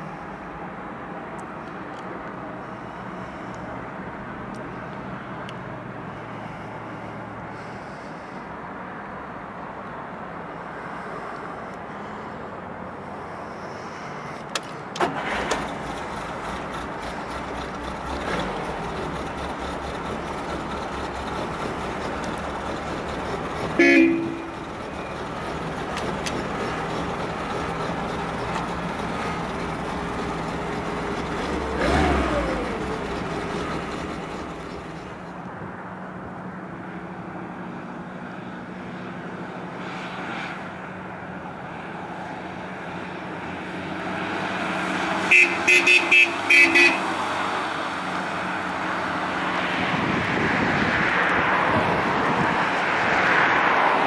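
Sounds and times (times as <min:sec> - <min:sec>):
car engine starting and idling: 0:14.5 - 0:35.5
engine revving: 0:15.0 - 0:35.2
car horn toot: 0:23.7 - 0:24.6, 0:45.3 - 0:47.1.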